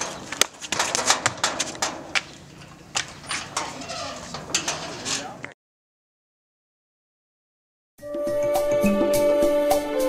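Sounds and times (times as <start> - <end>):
metal gate clanking shut: 0.0 - 5.4
gate creaking: 0.0 - 5.5.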